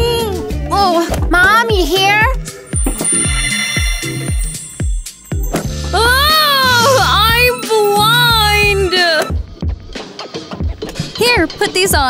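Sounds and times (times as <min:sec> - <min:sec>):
girl wailing: 0:05.9 - 0:09.3.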